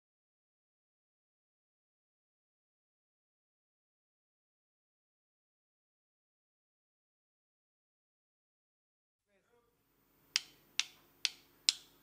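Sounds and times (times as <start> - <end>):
drum stick clicks: 10.3 - 12.0.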